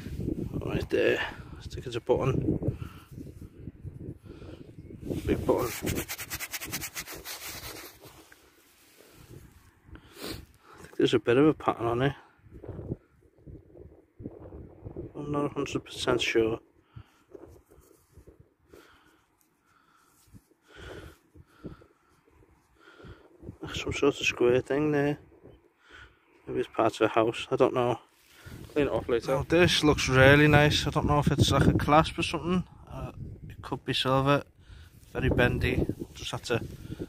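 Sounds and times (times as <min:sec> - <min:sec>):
man breathing softly: 0:02.6 - 0:03.6, 0:16.8 - 0:18.0, 0:18.6 - 0:23.5, 0:25.7 - 0:26.4, 0:34.6 - 0:35.1
fingers rubbing soil: 0:05.1 - 0:08.4.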